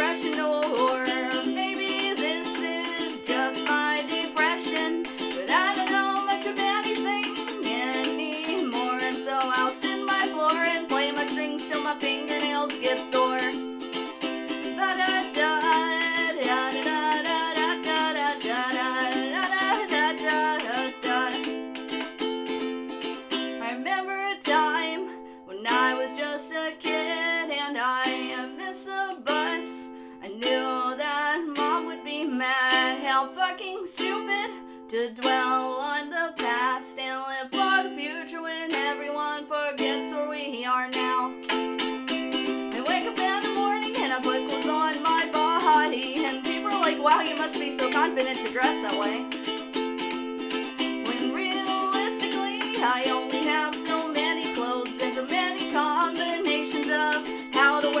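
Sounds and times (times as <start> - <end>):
ukulele strumming chords: 0.0 - 58.0
woman singing: 0.0 - 58.0.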